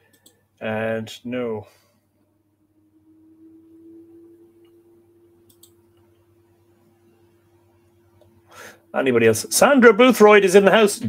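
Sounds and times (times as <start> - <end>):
faint steady hum: 0.0 - 11.0
computer mouse clicking: 0.1 - 0.4, 5.4 - 6.2.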